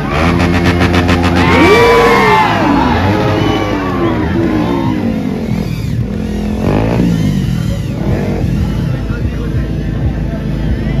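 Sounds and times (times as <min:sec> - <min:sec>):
crowd voices: 0:00.0 - 0:11.0
motorcycle engines revving: 0:00.0 - 0:11.0.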